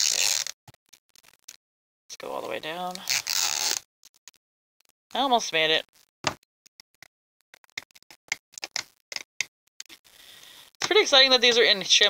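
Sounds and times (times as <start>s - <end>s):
plastic tear strip ripping: 0.0s - 1.6s, 2.9s - 4.3s.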